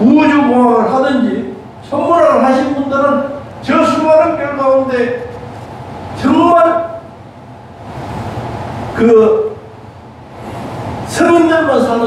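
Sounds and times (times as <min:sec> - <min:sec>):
large hall room noise hiss: 0:00.0 - 0:12.0.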